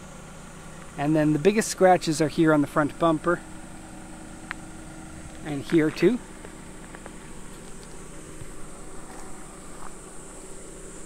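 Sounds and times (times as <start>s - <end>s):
low steady hum: 0.0s - 11.0s
high-pitched insect drone: 3.3s - 11.0s.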